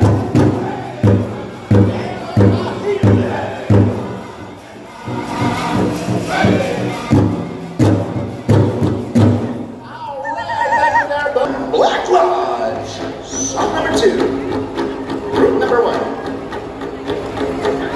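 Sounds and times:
big drum beating: 0:00.0 - 0:04.3, 0:05.0 - 0:09.8
drum group singing: 0:00.0 - 0:09.8
high wavering voice: 0:10.0 - 0:11.5.

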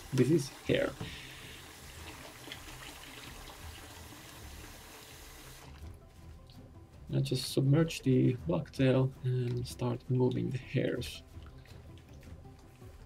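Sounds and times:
tap water running into sink: 0:00.0 - 0:05.9.

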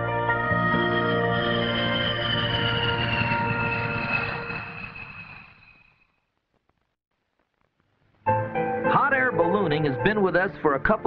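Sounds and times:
aircraft engine whine: 0:00.8 - 0:06.0.

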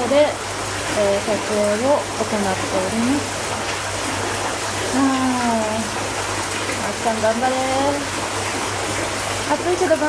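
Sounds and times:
water splashing into rock bath: 0:00.0 - 0:10.0
woman humming: 0:05.0 - 0:05.8.

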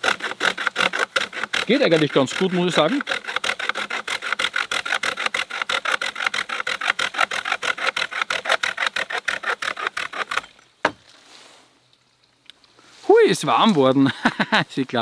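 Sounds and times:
handsaw cutting wood: 0:00.0 - 0:10.5.

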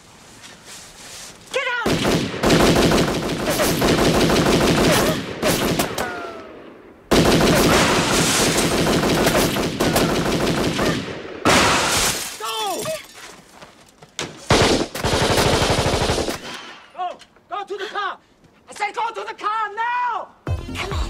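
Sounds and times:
automatic gunfire bursts: 0:01.9 - 0:05.9, 0:07.1 - 0:11.0, 0:14.5 - 0:16.4.

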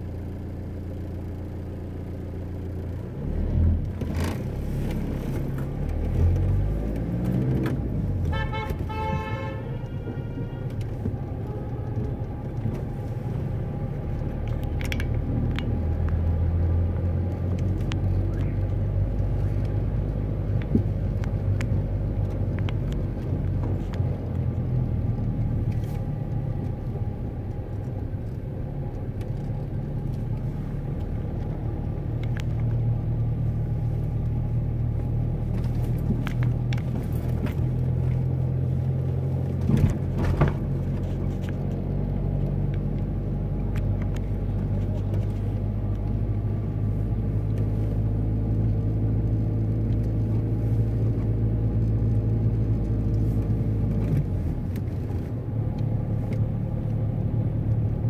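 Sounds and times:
car driving rumble: 0:00.0 - 0:58.0
car horn: 0:08.2 - 0:12.1.

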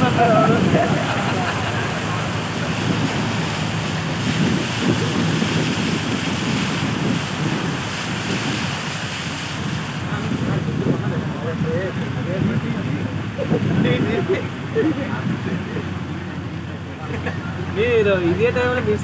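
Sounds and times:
vehicle moving through water: 0:00.0 - 0:19.0
water washing around vehicle: 0:00.0 - 0:19.0
wind buffeting microphone: 0:00.0 - 0:19.0.

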